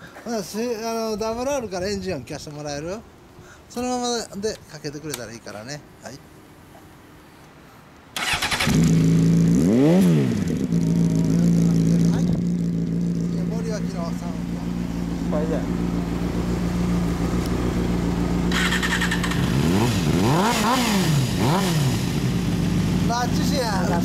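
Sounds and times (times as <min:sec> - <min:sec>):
motorcycle engine idling and revving: 0:08.2 - 0:24.0.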